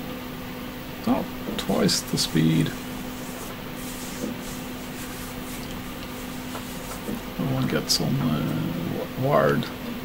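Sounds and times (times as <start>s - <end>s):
low constant hum: 0.0s - 10.0s
background hiss: 1.6s - 7.6s.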